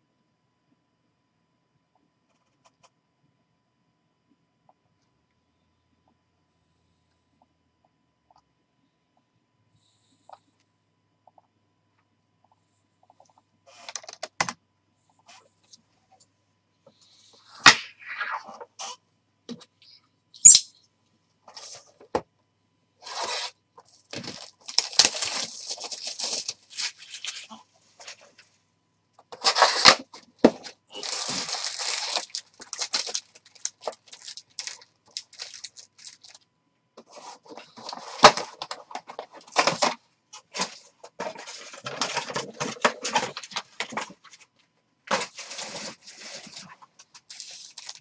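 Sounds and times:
plastic wrap tearing and crinkling: 0:23.0 - 0:27.6, 0:29.4 - 0:30.1, 0:30.9 - 0:36.4, 0:45.1 - 0:48.0
rustling: 0:37.0 - 0:48.0.

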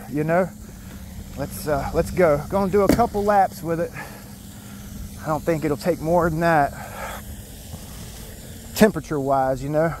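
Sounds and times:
man speaking: 0:00.0 - 0:00.6, 0:01.4 - 0:04.1, 0:05.2 - 0:06.8, 0:08.8 - 0:10.0
faint outdoor hiss: 0:00.0 - 0:10.0.

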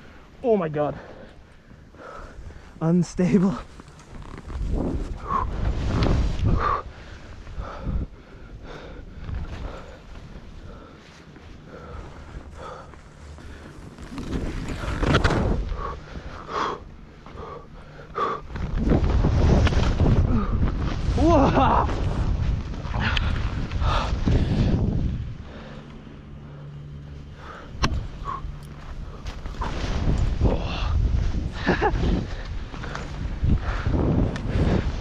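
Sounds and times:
skier breathing heavily: 0:01.0 - 0:02.8, 0:04.6 - 0:21.2, 0:22.0 - 0:35.0
skis running through snow: 0:02.9 - 0:07.8, 0:09.2 - 0:16.7, 0:18.4 - 0:25.8
wind on microphone: 0:04.2 - 0:08.2, 0:18.4 - 0:25.6, 0:29.0 - 0:35.0.

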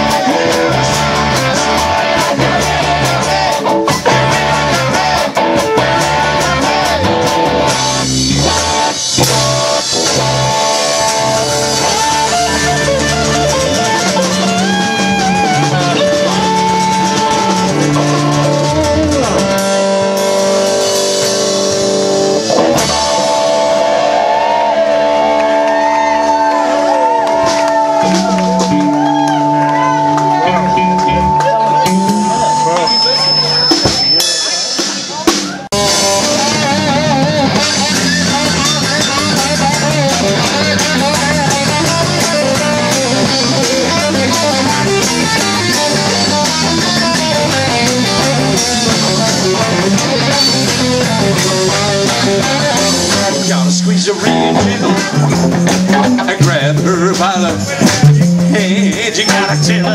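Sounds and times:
drum beat with cymbal hits: 0:00.0 - 0:24.1, 0:27.3 - 0:59.9
bass: 0:00.0 - 0:59.9
guitar chords: 0:00.0 - 0:59.9
lead guitar with bent notes: 0:00.0 - 0:59.9
crowd cheering and whooping: 0:23.0 - 0:34.0.

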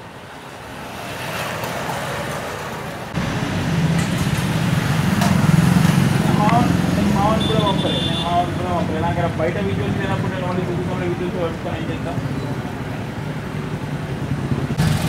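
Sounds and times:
street traffic noise: 0:00.0 - 0:15.0
vehicle engine running nearby: 0:01.5 - 0:15.0
person's voice: 0:06.2 - 0:13.0.

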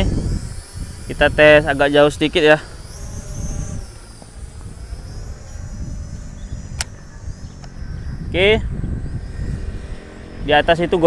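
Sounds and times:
drone propellers whining: 0:00.0 - 0:11.0
wind rumble on microphone: 0:00.0 - 0:11.0
sharp click: 0:06.7 - 0:07.0.

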